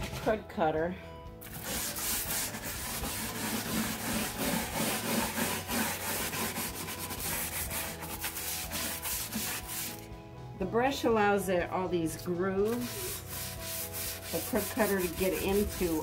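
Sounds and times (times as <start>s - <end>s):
brush scrubbing wood: 1.4s - 10.1s, 12.6s - 16.0s.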